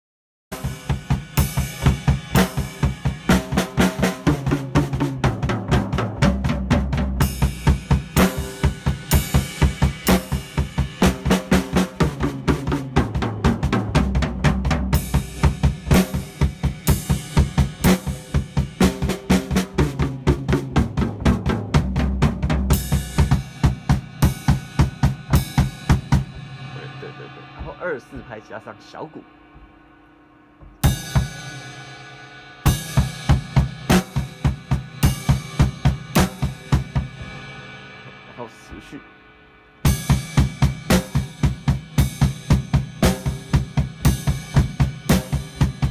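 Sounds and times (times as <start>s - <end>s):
backing track with bass line: 0.5s - 31.8s
drum kit rock beat: 0.5s - 45.9s.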